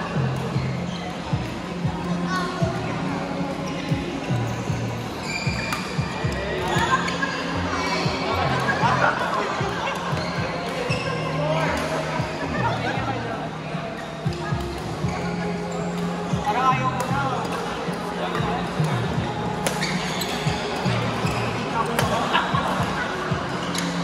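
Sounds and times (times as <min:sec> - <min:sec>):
rackets hitting shuttlecock: 0:19.6 - 0:22.9.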